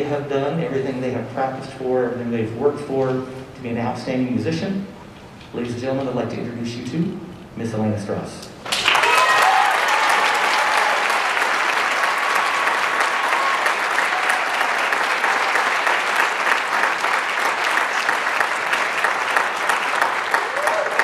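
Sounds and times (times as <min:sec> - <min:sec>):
people applauding: 0:08.6 - 0:21.0.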